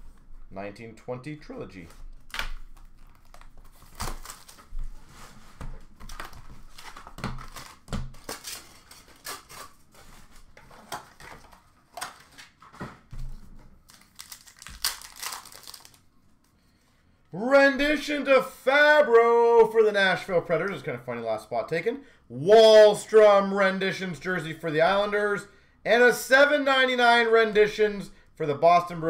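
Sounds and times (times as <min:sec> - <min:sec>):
plastic wrapping crinkling and tearing: 0:02.1 - 0:05.2, 0:05.8 - 0:12.6, 0:13.8 - 0:16.1.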